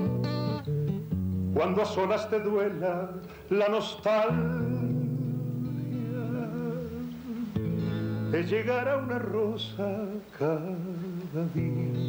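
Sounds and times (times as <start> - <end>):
acoustic guitar chords: 0.0 - 12.0
man singing with vibrato: 1.5 - 12.0.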